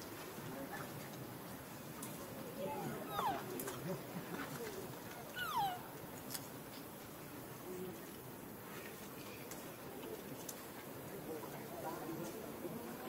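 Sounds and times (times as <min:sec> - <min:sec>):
macaque calls sliding down: 0:03.0 - 0:03.5, 0:05.3 - 0:05.9.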